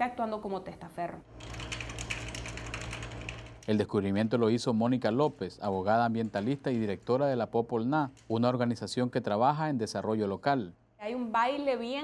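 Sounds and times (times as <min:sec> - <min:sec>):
computer keyboard typing: 0:01.3 - 0:04.0.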